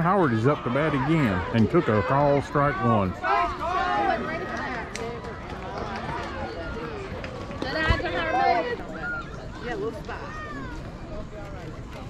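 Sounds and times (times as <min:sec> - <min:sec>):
spectators talking and calling out: 0:00.0 - 0:12.0.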